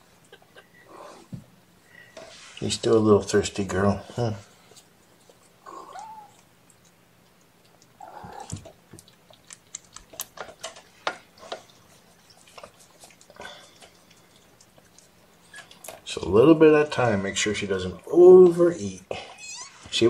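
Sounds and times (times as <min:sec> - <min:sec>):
cat mewing: 0:05.6 - 0:06.4, 0:08.0 - 0:08.7.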